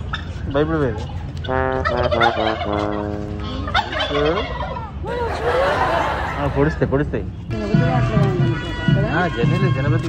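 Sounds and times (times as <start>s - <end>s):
turkey gobbling and calling: 0.0s - 6.8s.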